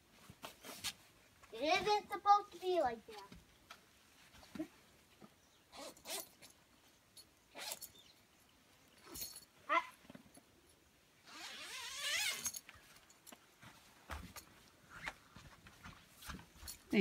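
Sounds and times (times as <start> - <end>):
tent door zipper: 5.7 - 6.5, 7.5 - 7.9, 11.2 - 12.6.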